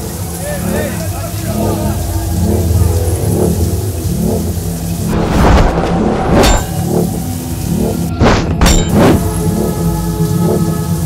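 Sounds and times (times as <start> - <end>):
low droning pulsing music: 0.0 - 11.0
loud rushing swells: 1.4 - 9.6
sharp hit: 5.0 - 9.4.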